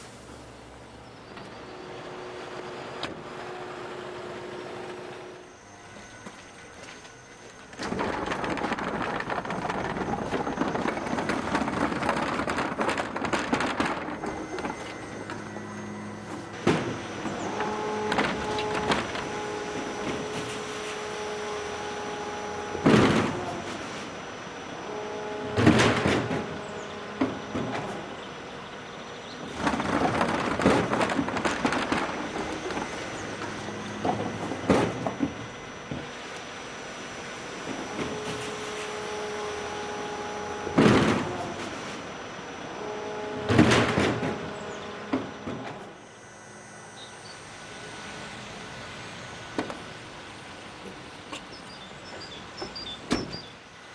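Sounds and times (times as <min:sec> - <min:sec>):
bin lifter motor whirring: 0:01.3 - 0:53.8.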